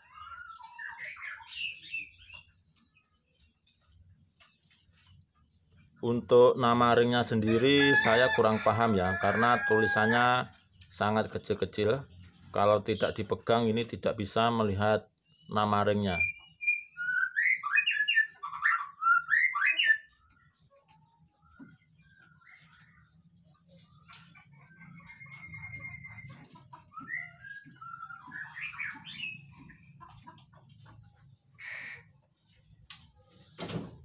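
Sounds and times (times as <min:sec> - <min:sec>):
bird singing whistled phrases: 0:16.1 - 0:20.2, 0:26.9 - 0:29.5.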